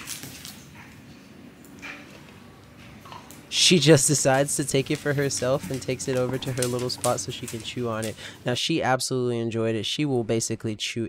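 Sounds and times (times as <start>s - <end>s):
dogs moving on bed: 4.7s - 8.2s.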